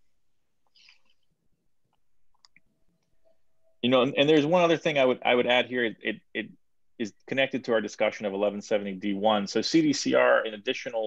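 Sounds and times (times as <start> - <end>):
faint small clicks: 1.9 - 3.2
man speaking: 3.8 - 11.0.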